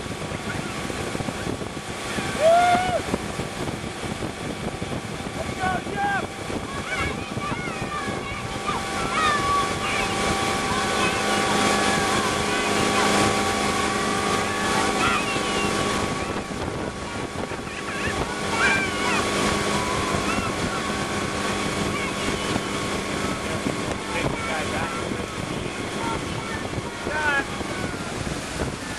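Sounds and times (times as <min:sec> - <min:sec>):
motorboat engine running: 0:00.0 - 0:28.9
rushing water: 0:00.0 - 0:28.9
wind buffeting microphone: 0:00.0 - 0:28.9.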